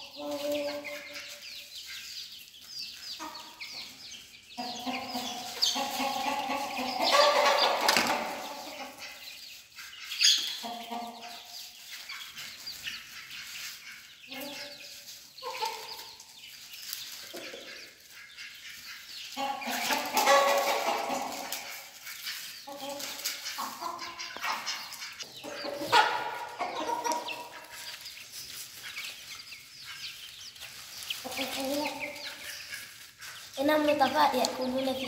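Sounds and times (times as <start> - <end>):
hens clucking: 0.0 - 35.0.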